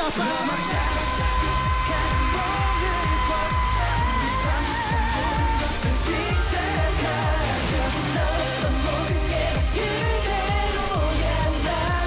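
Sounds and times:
deep bass drum beat: 0:00.7 - 0:12.0.

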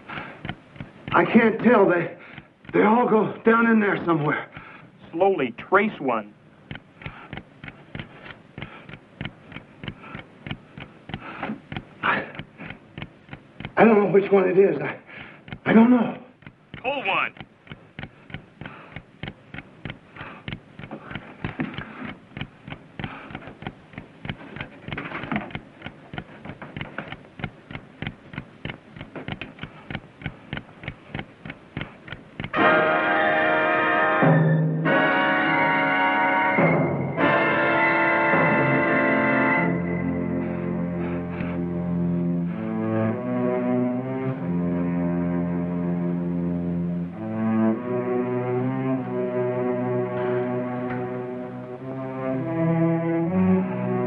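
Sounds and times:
clock timer ticking: 0:00.0 - 0:14.0, 0:15.1 - 0:32.6
orchestral music with string chords: 0:32.5 - 0:54.0.

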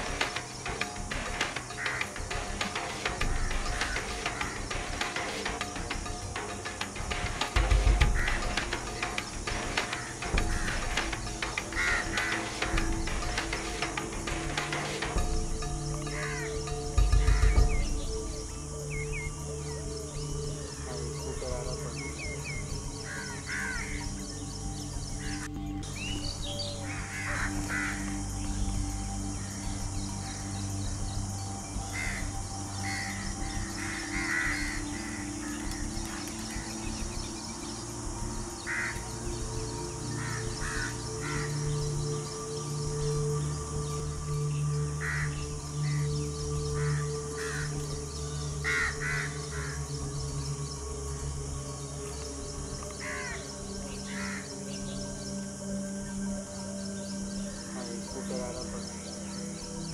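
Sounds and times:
low held music notes: 0:00.0 - 0:59.9.

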